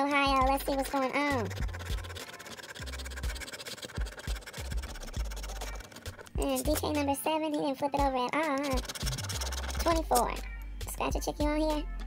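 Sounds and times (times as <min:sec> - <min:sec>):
coin scraping scratch card: 0:00.3 - 0:07.0, 0:08.4 - 0:10.3.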